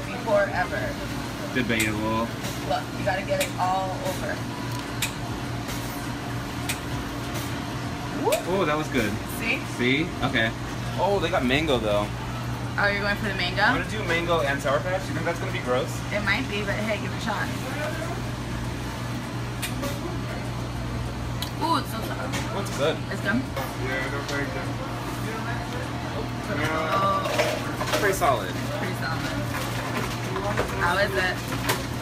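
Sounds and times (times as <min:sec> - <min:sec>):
slush machine humming: 0:00.0 - 0:32.0.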